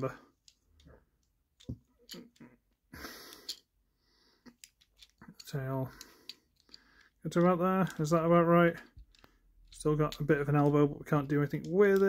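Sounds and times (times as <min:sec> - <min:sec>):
plastic toy parts clicking: 0:04.4 - 0:12.0.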